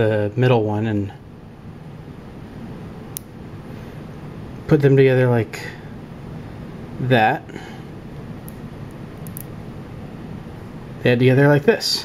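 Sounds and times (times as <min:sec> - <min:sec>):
low room noise: 0:00.0 - 0:12.0
magnet balls clicking together: 0:09.2 - 0:09.5.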